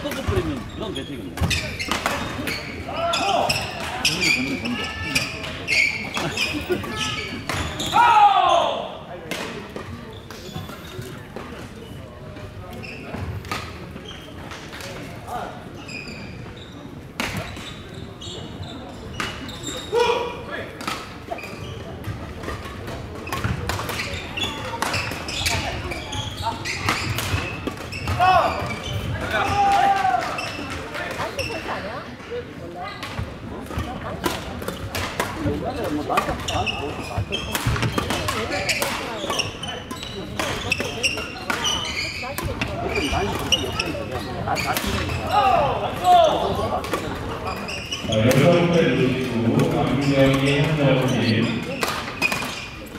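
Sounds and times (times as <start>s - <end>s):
shoes squeaking on wooden floor: 0.2s - 8.0s, 23.2s - 29.6s, 36.4s - 46.6s, 47.4s - 52.9s.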